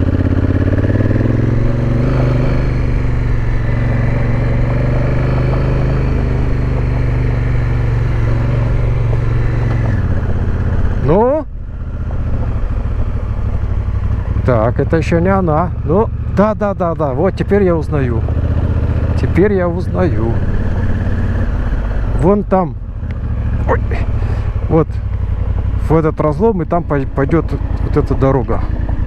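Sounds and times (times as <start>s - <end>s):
motorcycle engine running: 0.0s - 29.0s.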